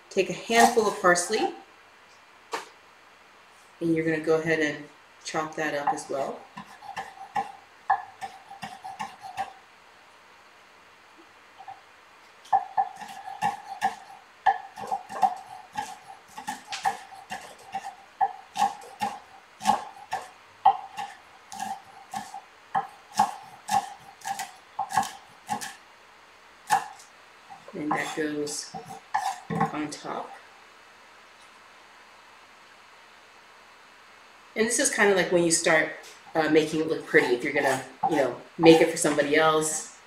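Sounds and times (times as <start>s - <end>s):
knife chopping on wooden board: 6.6s - 9.5s, 12.5s - 25.8s, 26.7s - 26.9s, 28.8s - 29.8s.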